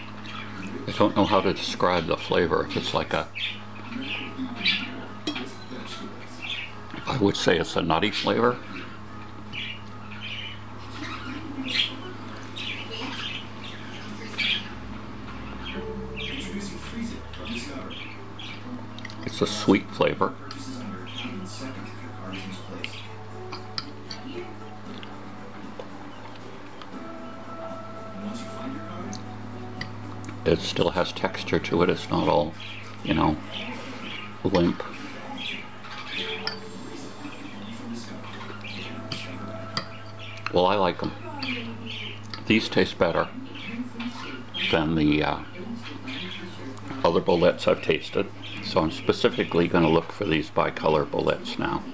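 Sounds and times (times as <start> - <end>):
steady low hum: 0.0 - 50.8
parrot squawking and chirping: 2.5 - 7.1, 8.2 - 20.2, 20.8 - 47.1.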